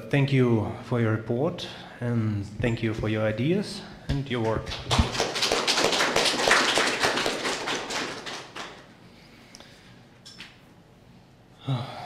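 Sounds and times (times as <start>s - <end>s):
audience applauding: 4.7s - 8.9s.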